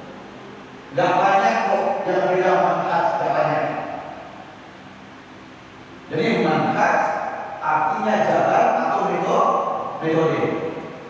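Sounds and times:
faint low hum: 0.0s - 11.0s
room tone hiss: 0.0s - 11.0s.

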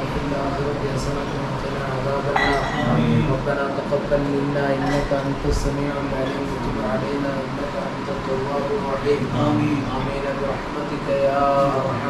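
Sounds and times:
men murmuring in prayer: 0.0s - 12.0s.

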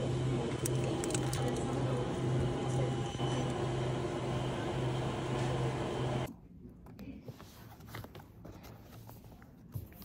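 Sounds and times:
low machine hum: 0.0s - 7.2s
room noise: 0.0s - 10.0s.

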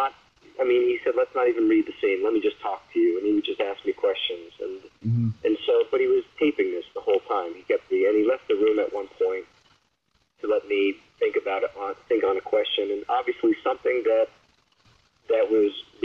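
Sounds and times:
person talking over phone line: 0.0s - 9.4s, 10.4s - 14.3s, 15.3s - 16.0s.

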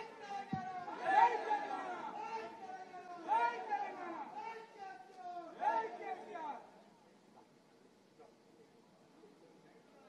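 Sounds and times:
voices talking and calling out: 0.0s - 8.8s.

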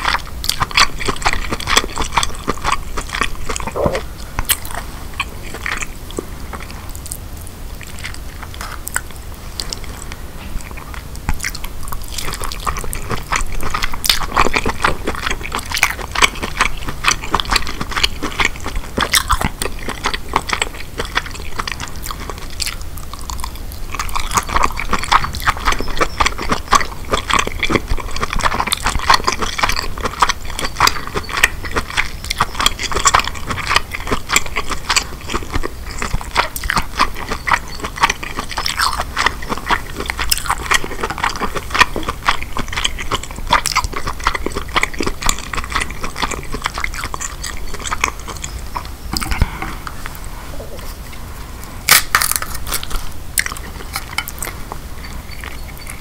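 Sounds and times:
close chewing crab meat: 0.0s - 56.0s.

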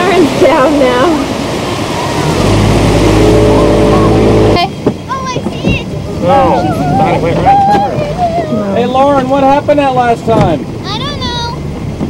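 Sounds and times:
motorboat engine running: 0.0s - 12.0s
rushing water: 0.0s - 12.0s
wind: 0.0s - 12.0s.

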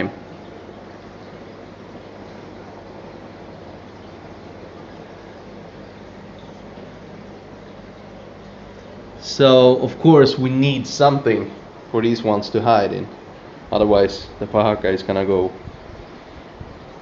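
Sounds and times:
faint low hum: 0.0s - 17.0s
steady hiss: 0.0s - 17.0s.

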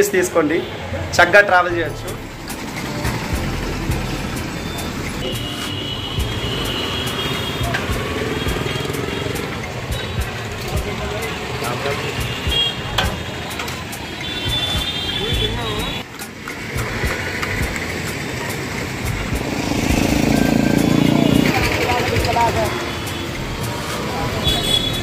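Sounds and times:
auto-rickshaw and motor traffic: 0.0s - 25.0s
murmur of voices: 0.0s - 25.0s
high-pitched beeping: 2.1s - 6.8s.

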